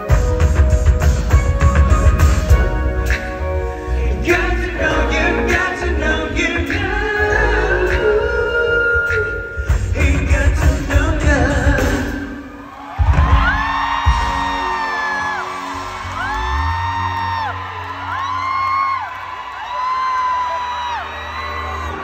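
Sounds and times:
live pop band: 0:00.0 - 0:17.8.

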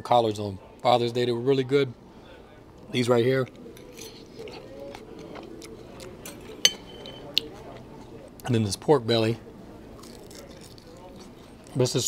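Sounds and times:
fork clinking on ceramic: 0:06.2 - 0:07.5.

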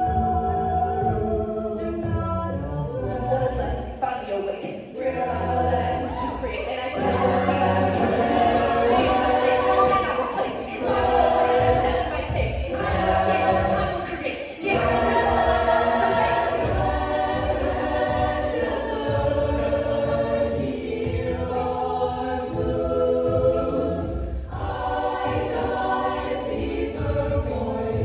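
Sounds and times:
a cappella group singing harmony: 0:00.0 - 0:28.0
vocal percussion: 0:00.0 - 0:28.0.

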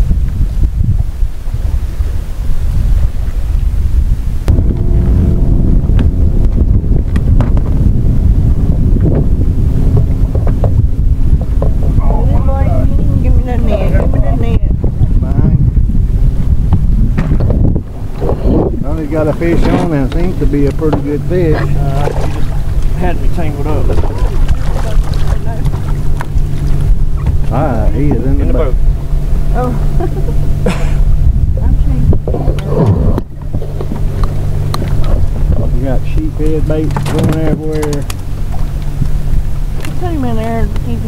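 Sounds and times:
wind buffeting microphone: 0:00.0 - 0:41.0
steady hum: 0:04.2 - 0:36.8.

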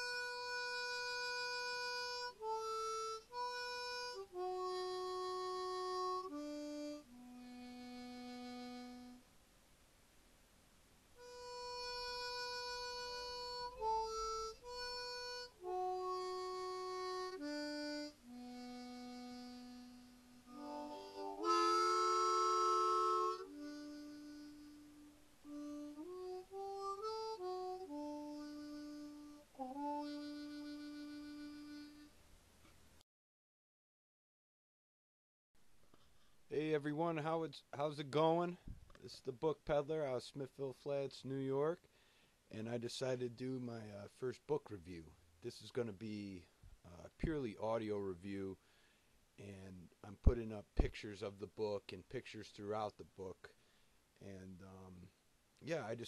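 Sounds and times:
harmonica long low note: 0:00.0 - 0:09.3, 0:11.2 - 0:32.2.

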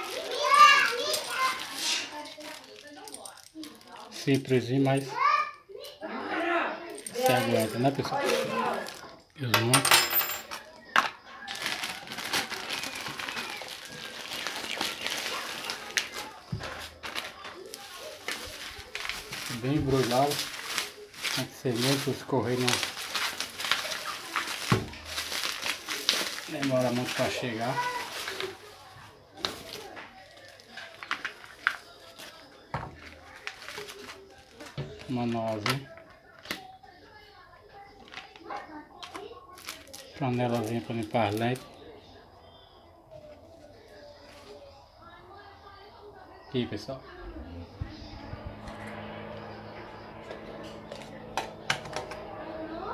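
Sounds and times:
bubble wrap crinkling: 0:00.0 - 0:04.1, 0:11.4 - 0:36.7, 0:39.0 - 0:41.7.

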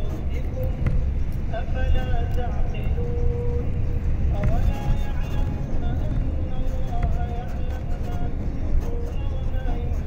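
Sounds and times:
vehicle road rumble: 0:00.0 - 0:10.0.

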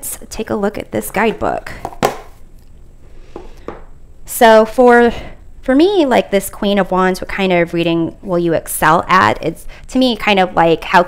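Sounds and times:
object set down on wooden table: 0:01.8 - 0:02.4, 0:03.3 - 0:03.9.

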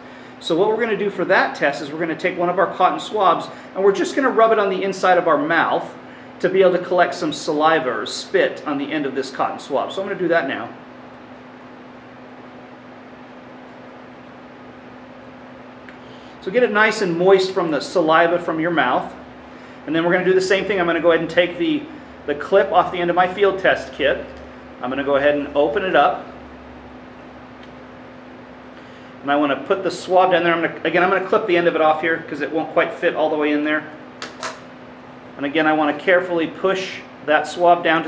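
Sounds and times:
ventilation hiss and hum: 0:00.0 - 0:38.0.

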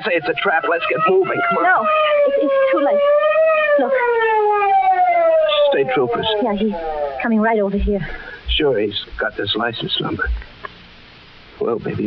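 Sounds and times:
police siren wailing: 0:00.0 - 0:07.6.

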